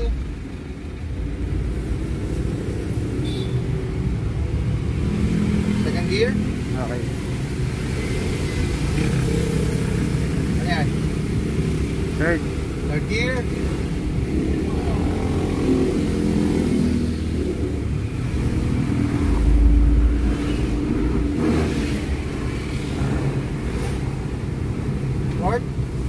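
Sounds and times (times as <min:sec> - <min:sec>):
car engine and road noise: 0:00.0 - 0:26.0.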